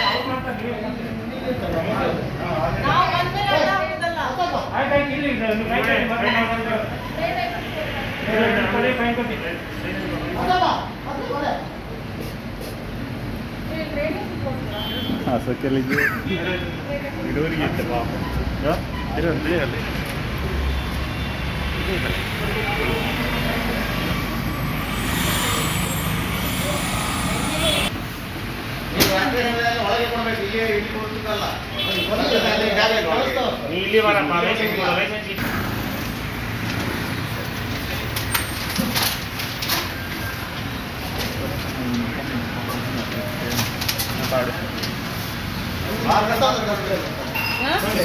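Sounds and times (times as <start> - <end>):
room noise: 20.1 - 28.5.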